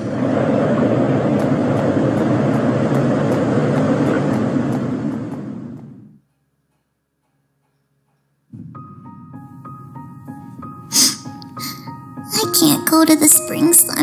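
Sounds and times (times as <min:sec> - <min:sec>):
rushing blizzard wind: 0:00.0 - 0:06.2.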